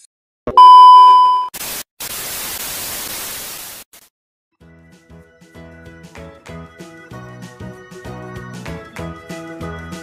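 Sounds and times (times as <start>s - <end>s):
test-tone beep: 0.5s - 1.5s
television static hiss: 1.6s - 3.8s.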